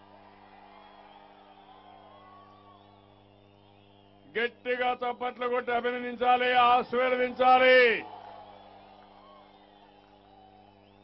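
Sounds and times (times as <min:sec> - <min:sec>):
crowd calls and whoops: 0:00.0 - 0:04.2, 0:07.6 - 0:11.0
public address system hum: 0:04.2 - 0:08.1.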